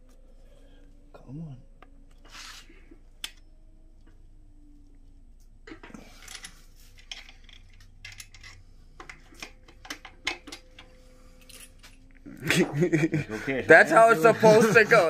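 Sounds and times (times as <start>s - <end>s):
light metal clicks and scrapes: 5.8s - 12.1s.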